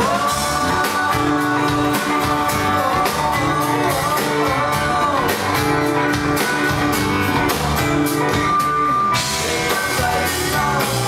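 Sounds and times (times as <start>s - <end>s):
live band with acoustic guitar: 0.0s - 11.0s.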